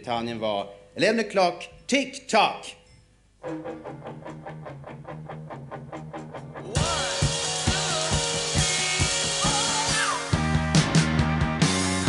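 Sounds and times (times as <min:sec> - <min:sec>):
electric guitar riff: 0:03.4 - 0:12.0
rock band playing: 0:03.4 - 0:12.0
drums and cymbals: 0:06.8 - 0:12.0.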